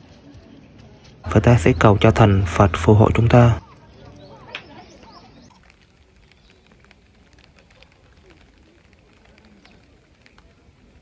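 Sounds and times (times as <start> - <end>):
light rain pattering: 0.0 - 11.0.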